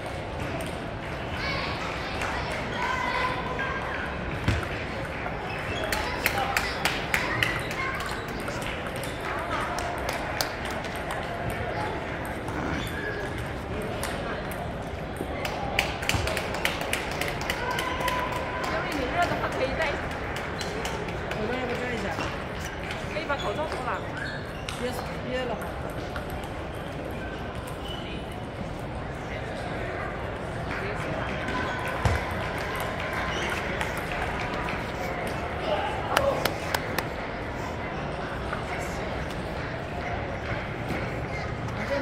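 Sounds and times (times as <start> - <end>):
crowd chatter in a hall: 0.0 - 42.0.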